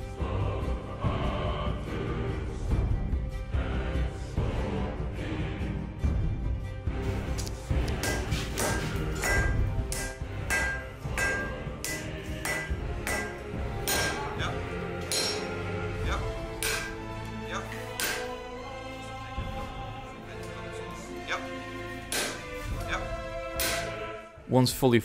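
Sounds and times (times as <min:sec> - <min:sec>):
background music: 0:00.0 - 0:25.0
hammer striking hot steel on anvil: 0:07.9 - 0:15.6, 0:16.6 - 0:17.1, 0:17.9 - 0:18.4, 0:22.1 - 0:22.5, 0:23.6 - 0:24.0.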